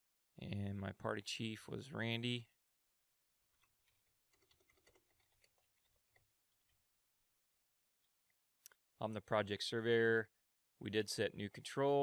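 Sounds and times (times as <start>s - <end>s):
computer keyboard typing: 3.6s - 6.7s.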